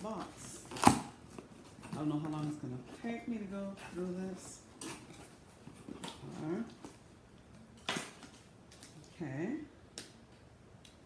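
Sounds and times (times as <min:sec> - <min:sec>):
cardboard tearing: 0:00.6 - 0:01.2.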